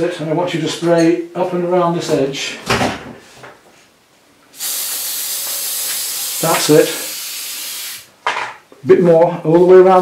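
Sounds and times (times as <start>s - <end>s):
spray paint can hissing: 4.6s - 8.1s.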